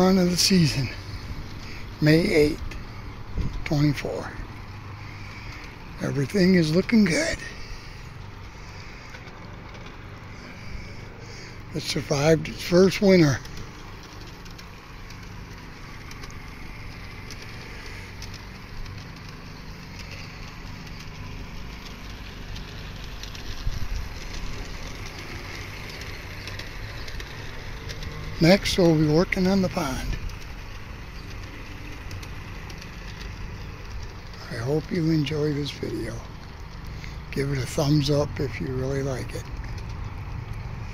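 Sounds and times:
model train motor hum: 0.0s - 40.9s
wheels clicking over rail joints: 0.0s - 40.9s.

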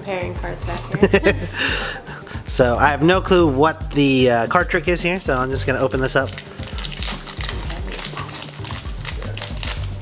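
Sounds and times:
background music: 0.0s - 10.0s
foil wrapper tearing and crinkling: 5.2s - 10.0s.

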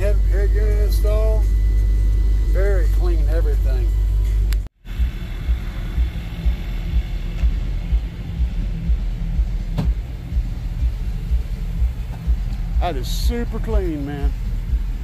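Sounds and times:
deep bass beat: 0.0s - 15.0s.

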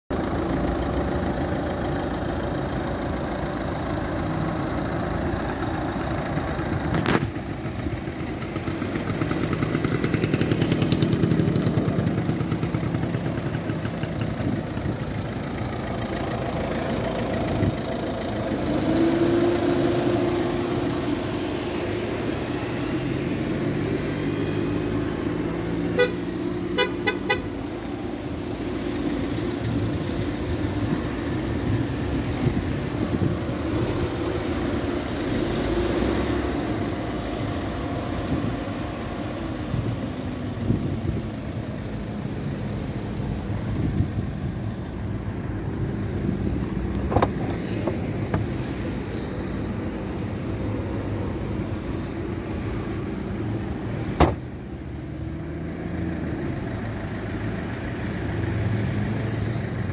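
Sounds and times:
diesel engine running: 0.1s - 59.9s.

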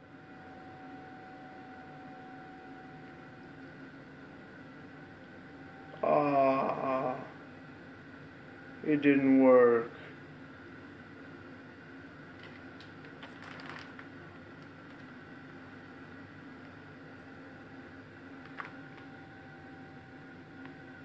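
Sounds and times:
faint steady hum: 0.0s - 21.0s
soft clicks and rustles: 12.4s - 15.2s.

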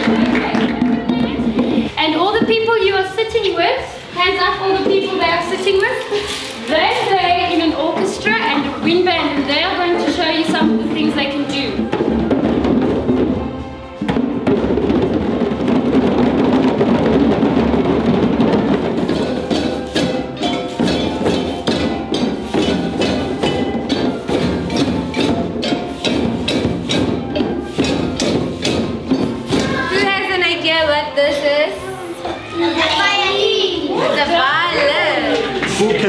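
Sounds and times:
djembe hand drums: 0.0s - 31.4s
basket shaker: 0.0s - 33.0s
children's voices: 29.5s - 30.3s, 31.7s - 35.7s.

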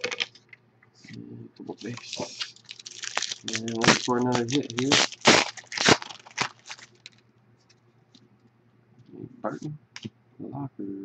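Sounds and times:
foil wrapper tearing and crinkling: 0.0s - 0.3s, 1.8s - 7.2s.

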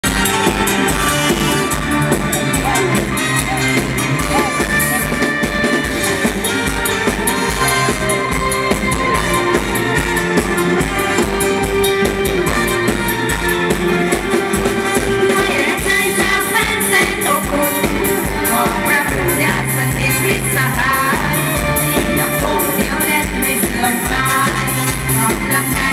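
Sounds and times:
drum kit and percussion beat: 0.0s - 25.9s
live band playing upbeat song: 0.0s - 25.9s.

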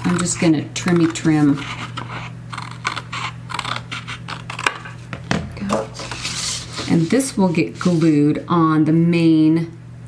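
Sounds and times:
scissors snipping cardstock: 0.0s - 4.9s.

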